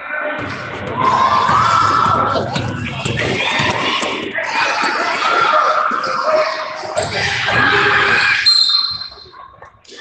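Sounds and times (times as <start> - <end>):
people shouting: 0.0 - 10.0
referee's whistle: 8.2 - 9.4.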